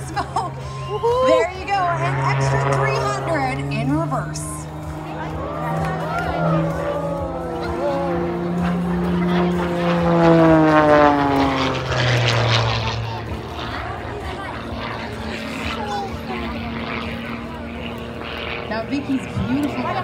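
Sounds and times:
propeller plane engine droning: 0.0 - 20.0.

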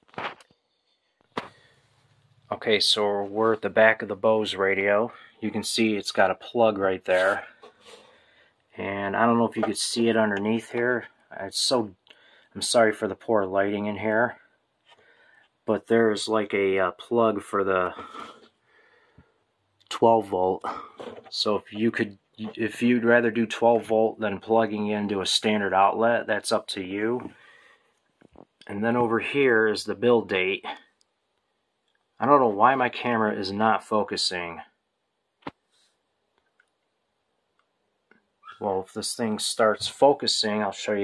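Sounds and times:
man speaking: 2.5 - 7.6, 8.7 - 14.4, 15.6 - 18.4, 19.8 - 27.4, 28.6 - 30.9, 32.2 - 34.7, 38.5 - 41.0.

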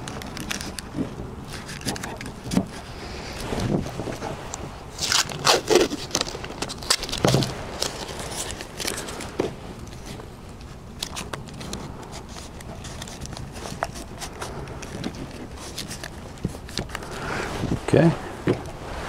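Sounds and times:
tape being handled and pressed: 0.0 - 17.2
tape ripping off roll: 5.0 - 9.5.

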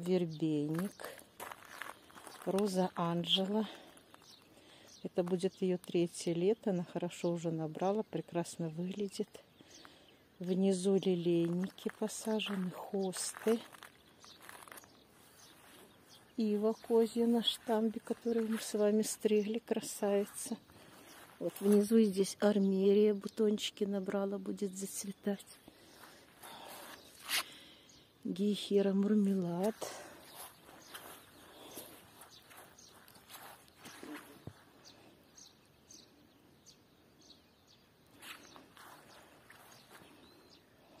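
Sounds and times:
footsteps on gravel: 0.5 - 4.6, 10.9 - 22.1, 25.8 - 27.5, 29.1 - 34.7, 38.2 - 40.4.

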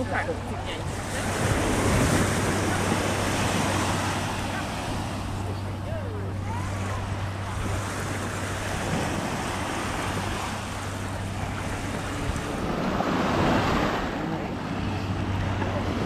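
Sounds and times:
surf washing onto beach: 0.7 - 16.0.

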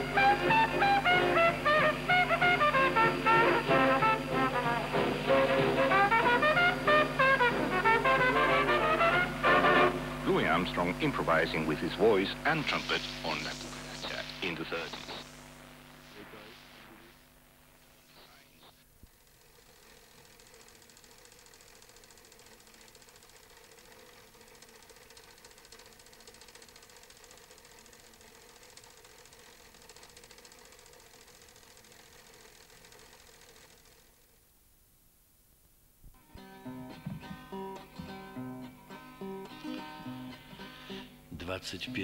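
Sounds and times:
guitar playing: 0.0 - 13.8, 36.2 - 42.0
faint steady hiss: 0.0 - 42.0.

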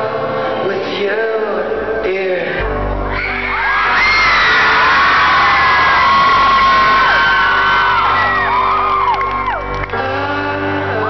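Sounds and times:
crowd screaming and cheering: 3.0 - 10.3.

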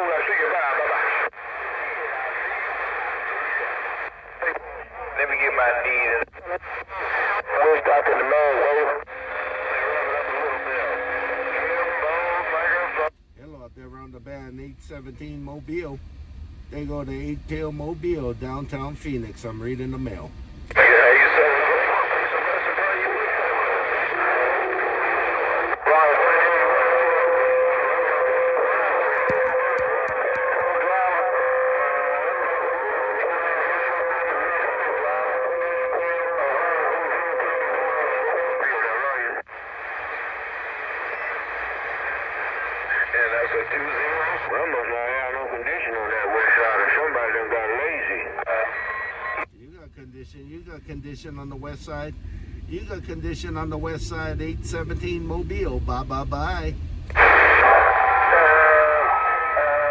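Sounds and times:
indistinct radio voices: 0.0 - 15.9, 16.7 - 59.9.

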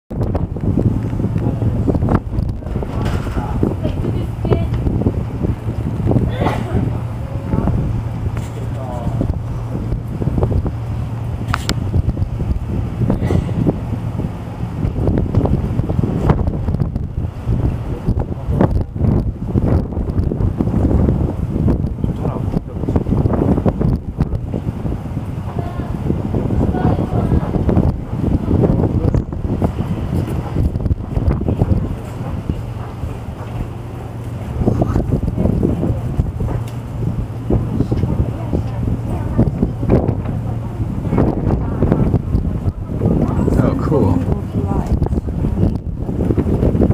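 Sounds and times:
wind on microphone: 0.1 - 46.9.

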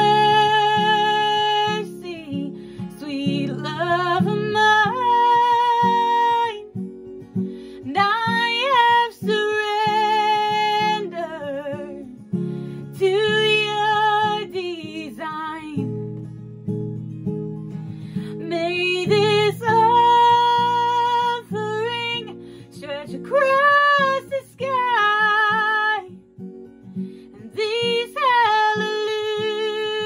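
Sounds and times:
woman singing with vibrato: 0.0 - 6.6, 7.9 - 12.0, 12.9 - 15.9, 18.3 - 26.2, 27.4 - 30.0.

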